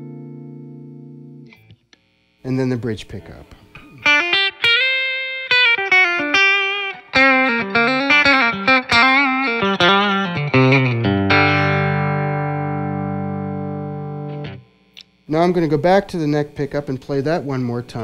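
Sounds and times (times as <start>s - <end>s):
electric guitar picked notes: 0.0s - 2.3s, 3.0s - 15.3s
electric guitar chord ringing: 0.0s - 15.3s.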